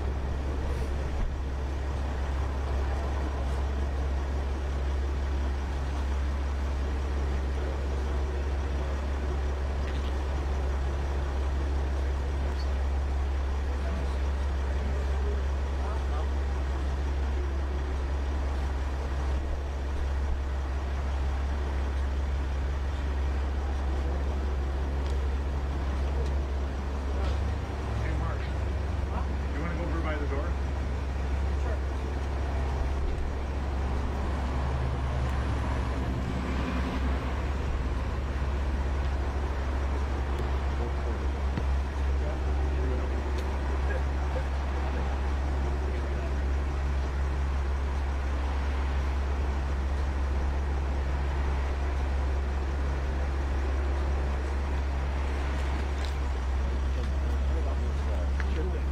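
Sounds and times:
indistinct voices murmuring: 0.0 - 58.9
street traffic: 0.0 - 58.9
vehicle engine idling: 0.0 - 58.9.

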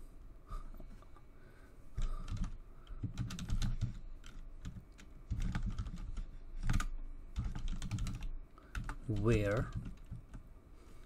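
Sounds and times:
computer keyboard typing: 2.0 - 10.4.

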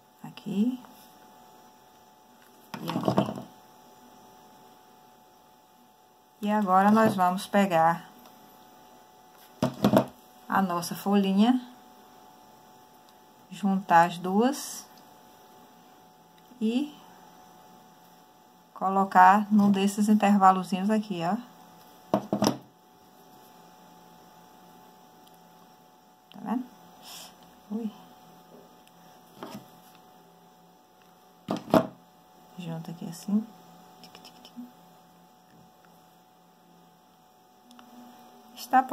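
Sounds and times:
electrical mains hum: 0.0 - 38.9.

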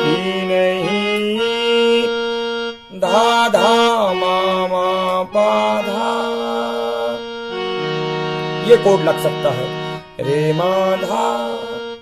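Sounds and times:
man singing: 0.0 - 2.3, 2.9 - 12.0
reed-voiced electronic keyboard melody: 0.0 - 12.0.

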